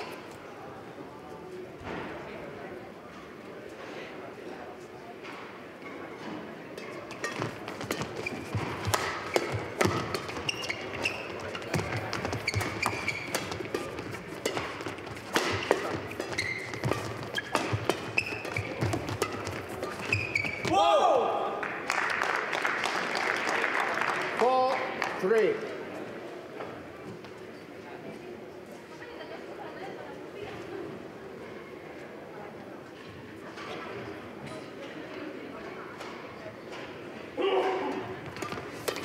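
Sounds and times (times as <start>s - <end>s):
shoes squeaking on court floor: 5.8s - 20.8s, 38.2s - 39.0s
rackets hitting shuttlecock: 6.8s - 20.8s, 38.2s - 39.0s
loud shout: 20.7s - 21.6s, 37.4s - 38.0s
applause: 21.6s - 25.4s.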